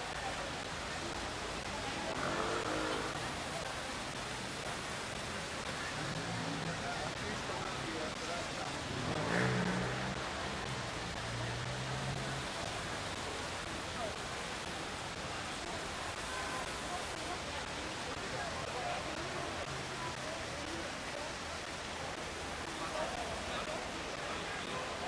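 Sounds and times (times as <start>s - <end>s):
crowd voices: 0.0s - 25.0s
car engine passing: 8.8s - 10.6s.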